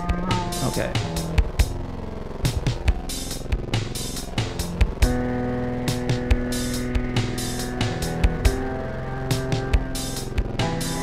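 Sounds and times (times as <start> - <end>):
electronic drum beat: 0.0 - 11.0
synthesizer: 0.0 - 11.0.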